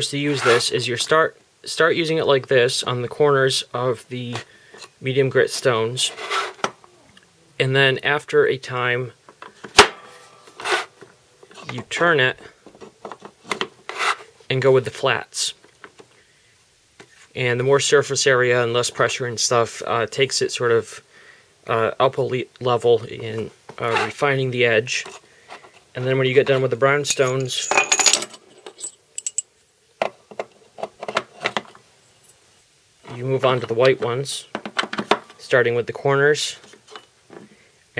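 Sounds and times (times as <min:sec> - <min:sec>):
scraping rub: 0:10.2 - 0:11.0.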